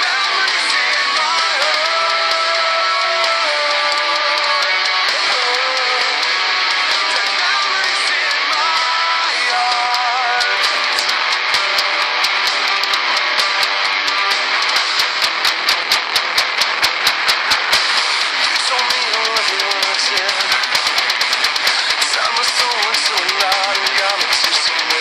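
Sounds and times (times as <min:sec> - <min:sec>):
drums beating rapidly: 0:00.0 - 0:25.0
electric guitar playing metal: 0:00.0 - 0:25.0
full-band backing track: 0:00.0 - 0:25.0.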